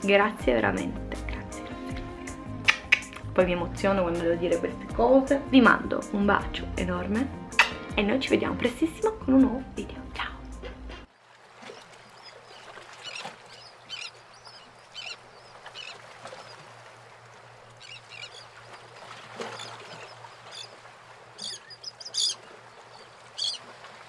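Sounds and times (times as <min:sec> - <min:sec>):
birds calling: 0:02.3 - 0:03.3, 0:11.6 - 0:23.8.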